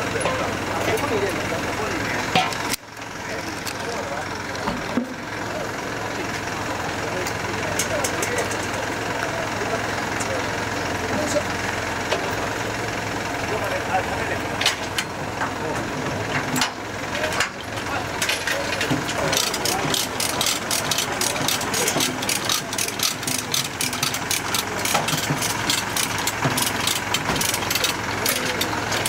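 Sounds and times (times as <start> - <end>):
people talking at once: 0.0 - 2.4, 3.2 - 11.7, 12.3 - 14.6, 17.0 - 25.2
low engine idle: 0.0 - 29.0.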